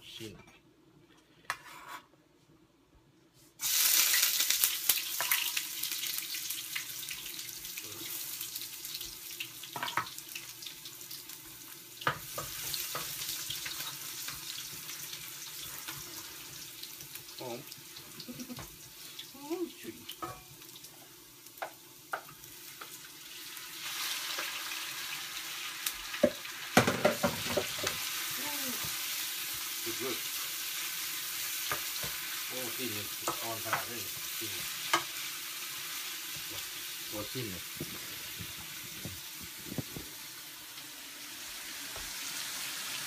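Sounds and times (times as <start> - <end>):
food sizzling in hot oil: 3.6 - 43.0.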